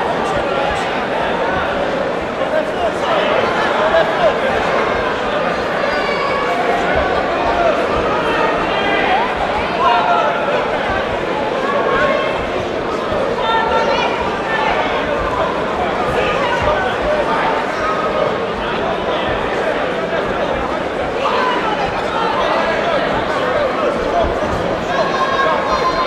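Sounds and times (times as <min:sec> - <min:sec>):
crowd talking and shouting: 0:00.0 - 0:26.0.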